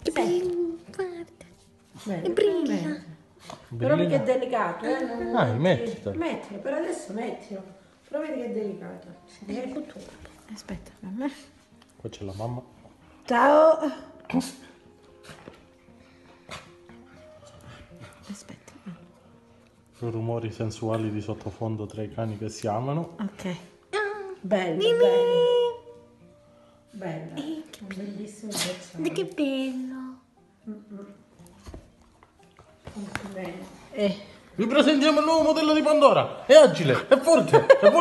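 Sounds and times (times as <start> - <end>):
faint background music: 0.0 - 38.0.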